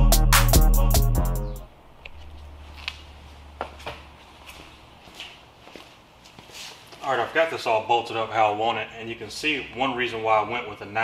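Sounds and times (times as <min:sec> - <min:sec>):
shuffling footsteps: 0:02.0 - 0:07.7.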